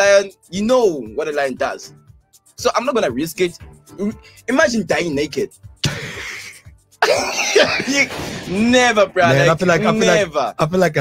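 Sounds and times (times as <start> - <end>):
man's hoarse coughing laughter: 5.8 - 8.1.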